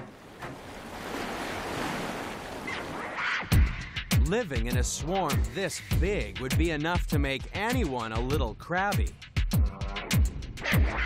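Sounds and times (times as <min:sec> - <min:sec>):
ocean surf splashing: 0:00.0 - 0:03.7.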